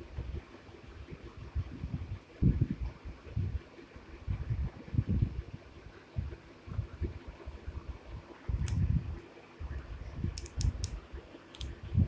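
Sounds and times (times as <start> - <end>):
sharp clicks: 10.4 - 11.7.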